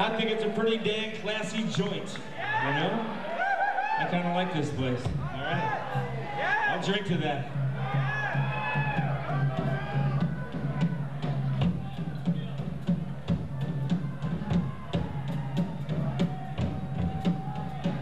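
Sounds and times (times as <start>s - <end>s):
crowd noise: 0.0s - 18.0s
drum kit beat: 5.0s - 18.0s.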